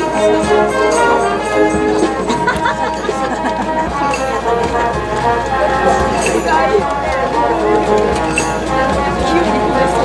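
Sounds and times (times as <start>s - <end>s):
brass band playing a march: 0.0s - 10.0s.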